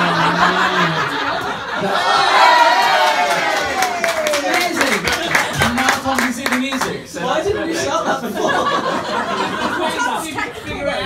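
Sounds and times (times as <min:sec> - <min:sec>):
audience clapping: 0:02.4 - 0:07.1.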